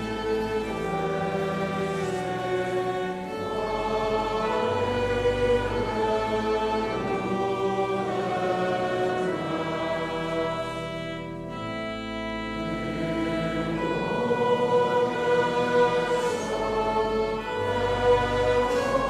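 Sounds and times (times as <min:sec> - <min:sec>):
congregation singing a psalm: 0:00.0 - 0:19.0
pipe organ: 0:00.0 - 0:19.0.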